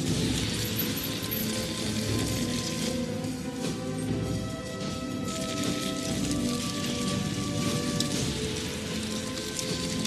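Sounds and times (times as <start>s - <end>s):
molten metal sizzling: 0.0s - 4.4s, 5.0s - 10.0s
slow sustained film score: 0.0s - 10.0s.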